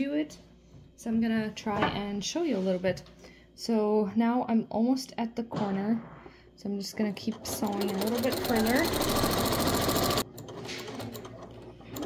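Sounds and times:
sewing machine stitching: 7.2s - 12.0s.

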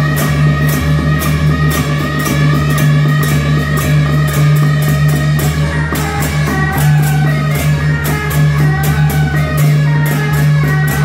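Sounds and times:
cymbals gong and drum beat: 0.0s - 11.0s
loud suona melody: 0.0s - 11.0s.

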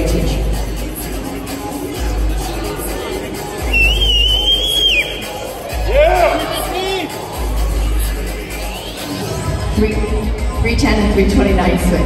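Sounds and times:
background music: 0.0s - 12.0s
crowd noise: 0.0s - 12.0s
person whistling high note: 3.6s - 5.4s.

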